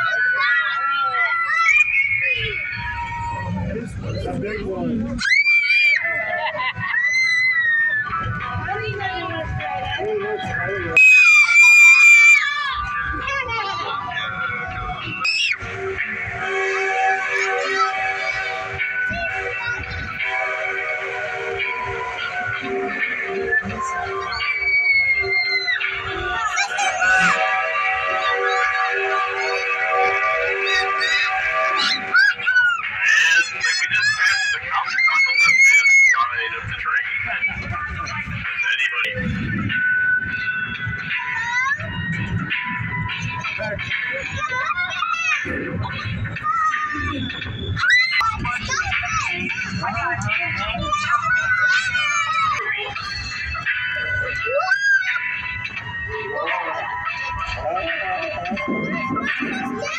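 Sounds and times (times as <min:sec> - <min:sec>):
spooky music with held chords: 0:10.8 - 0:37.7, 0:38.3 - 0:59.9
wavering sliding shrieks: 0:14.4 - 0:36.3.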